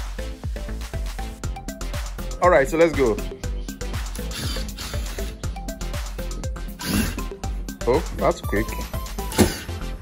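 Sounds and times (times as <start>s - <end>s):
background music: 0.0s - 10.0s
cordless drill whirring: 4.2s - 5.4s.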